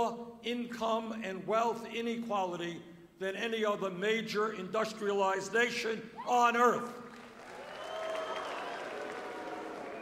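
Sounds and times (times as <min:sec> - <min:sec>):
crowd applauding: 0:07.0 - 0:10.0.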